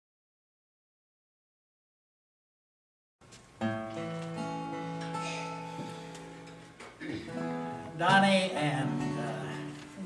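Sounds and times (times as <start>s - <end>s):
acoustic guitar strummed: 3.6s - 10.0s.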